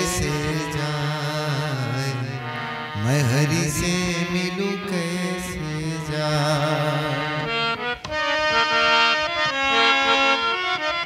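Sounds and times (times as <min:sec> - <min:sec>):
man singing ornamented run: 0:00.0 - 0:07.9
harmonium chords: 0:00.0 - 0:11.0.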